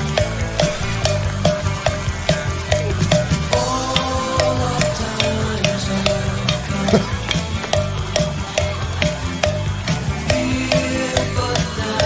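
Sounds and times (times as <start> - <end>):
cowbell strikes: 0.0 - 12.0
rock band playing: 0.0 - 12.0.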